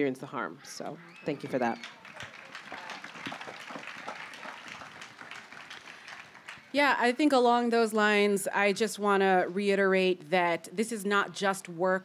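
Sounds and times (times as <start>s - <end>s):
audience applauding: 1.0s - 6.8s.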